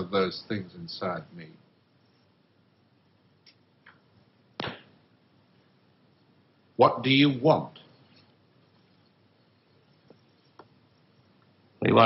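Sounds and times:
short sharp impact: 4.6 - 4.9.

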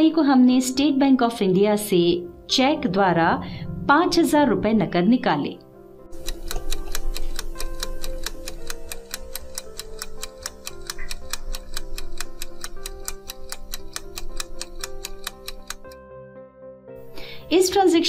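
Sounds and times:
soft background music: 0.0 - 18.0
clock ticking: 6.1 - 16.0.

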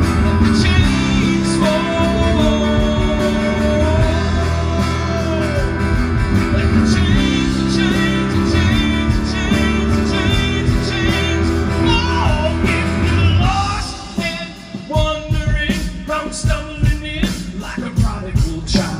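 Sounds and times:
live band with guitars: 0.0 - 18.9.

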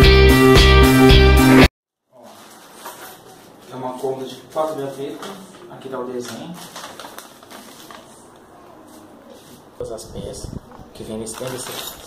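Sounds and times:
paper rustling and crinkling: 2.2 - 9.7, 11.0 - 12.0.

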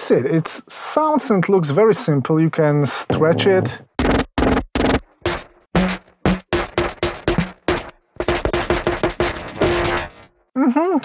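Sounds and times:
electronic percussion hits: 3.2 - 10.3.

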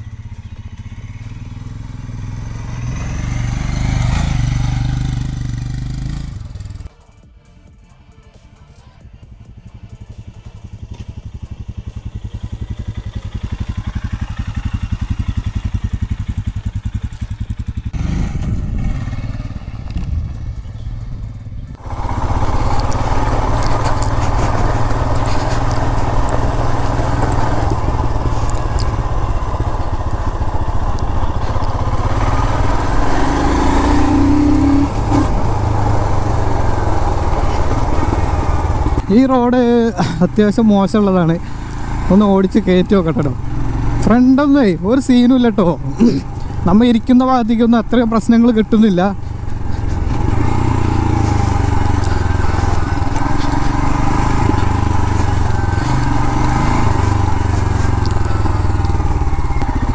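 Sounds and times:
motorcycle engine: 0.0 - 7.0, 8.8 - 59.9
road noise: 0.0 - 59.9.

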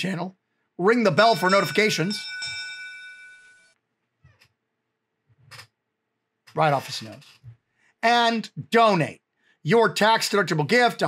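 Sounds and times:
ship's bell ringing: 1.1 - 3.8.

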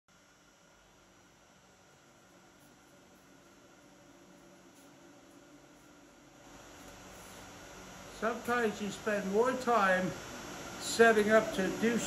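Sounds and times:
low hum: 0.2 - 12.0.

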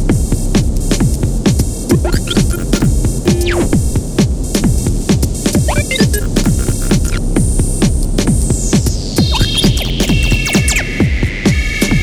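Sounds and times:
low throbbing synth bass: 0.0 - 4.2
drum machine hits dropping in pitch: 1.5 - 4.4, 5.5 - 7.2.

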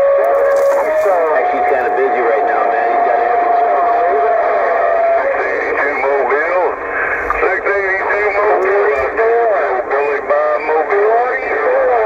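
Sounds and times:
steady radio whistle: 0.0 - 12.0
garbled radio voices: 0.1 - 12.0.

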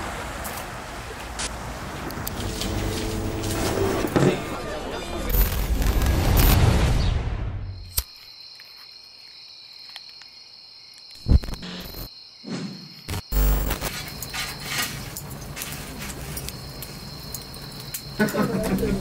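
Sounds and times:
crickets trilling: 7.0 - 19.0
crackly noise: 11.0 - 12.1, 13.1 - 19.0.

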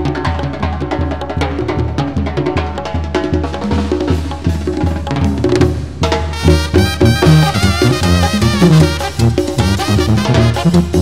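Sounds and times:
drums playing steady beat: 0.0 - 11.0
tuba bass notes: 5.1 - 11.0
sustained brass chords: 6.1 - 11.0.

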